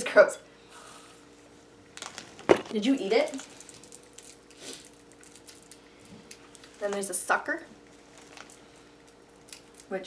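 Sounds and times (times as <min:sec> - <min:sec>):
steady low hum: 0:00.0 - 0:10.0
plastic wrapper crinkling: 0:01.9 - 0:10.0.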